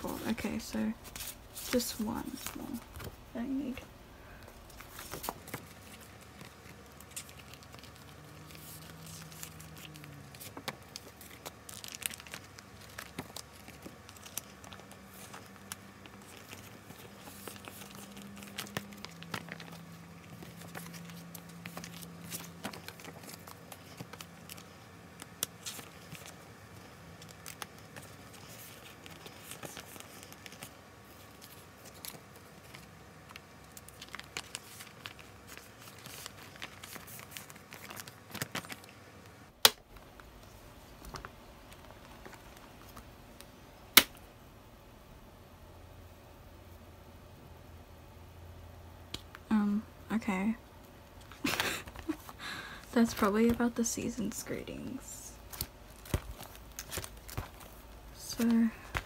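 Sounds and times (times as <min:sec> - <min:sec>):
plastic sleeves crinkling: 0:00.0 - 0:44.2, 0:50.4 - 0:59.0.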